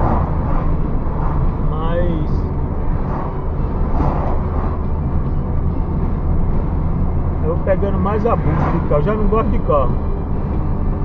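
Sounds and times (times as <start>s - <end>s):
car engine and tyre drone: 0.0s - 11.0s.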